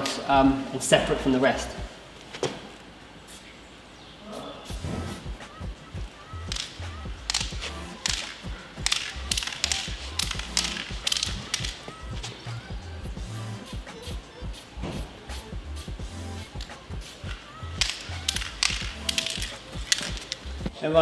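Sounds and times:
spray paint can hissing: 4.6s - 20.7s
background music with deep bass: 4.6s - 21.0s.

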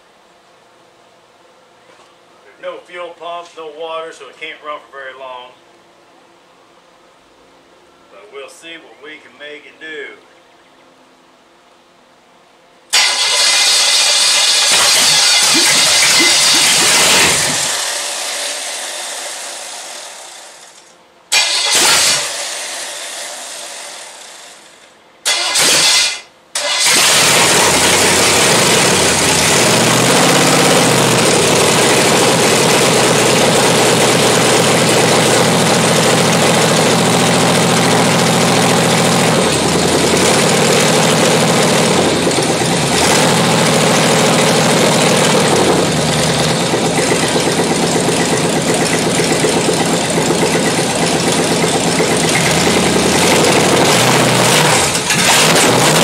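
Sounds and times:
loud engine revving: 12.9s - 20.6s, 21.3s - 24.2s, 25.3s - 56.0s.

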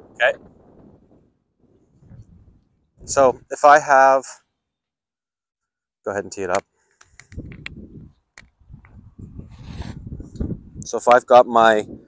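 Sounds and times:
wind buffeting microphone: 0.0s - 3.6s, 7.1s - 12.0s.

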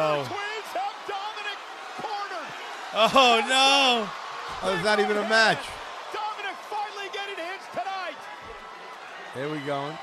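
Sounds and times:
people talking: 3.0s - 8.0s.

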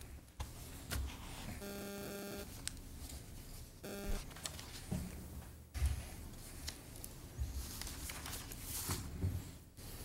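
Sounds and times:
low electronic buzz: 1.6s - 2.5s, 3.8s - 4.2s.

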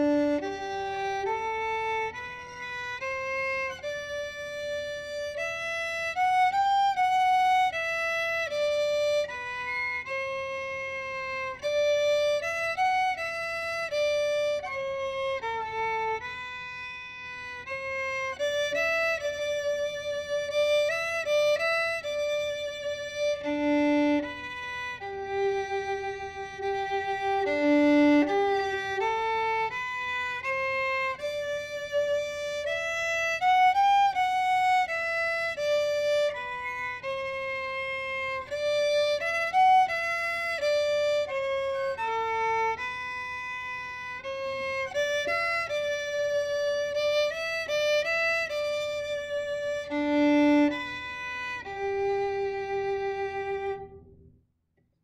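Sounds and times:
solo violin bowed notes: 0.0s - 54.3s.

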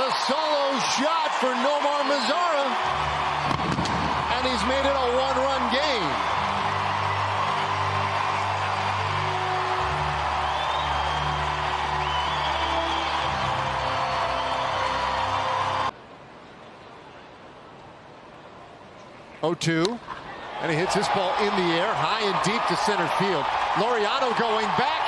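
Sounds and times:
crowd cheering: 0.0s - 15.9s, 20.3s - 25.0s.

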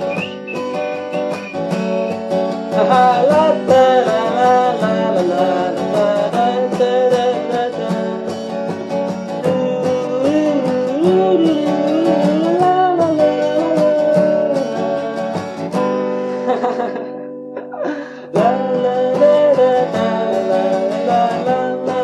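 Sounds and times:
acoustic guitar strumming rhythm: 0.0s - 22.0s
man singing: 2.7s - 15.4s, 17.8s - 22.0s.

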